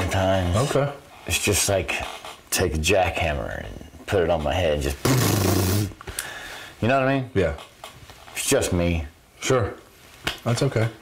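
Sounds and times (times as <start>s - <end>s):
man imitating jackhammer: 5.0s - 6.0s.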